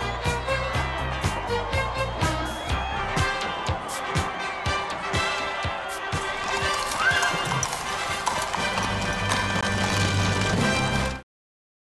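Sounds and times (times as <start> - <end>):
hooves clip-clopping on cobblestones: 3.2 - 11.2.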